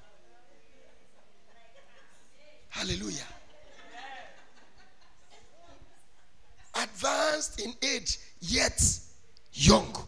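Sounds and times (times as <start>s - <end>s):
man speaking through a microphone: 2.7s - 3.4s, 6.8s - 10.0s.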